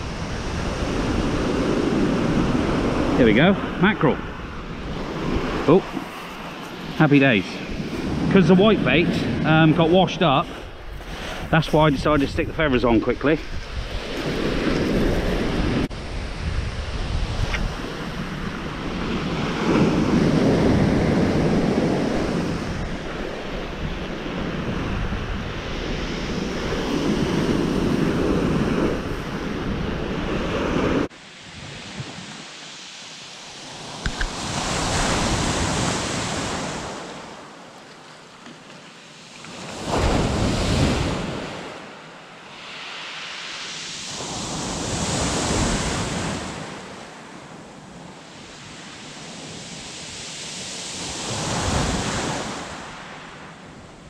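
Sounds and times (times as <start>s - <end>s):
wind buffeting microphone: 0.0s - 32.4s
surf on shingle beach: 0.0s - 54.0s.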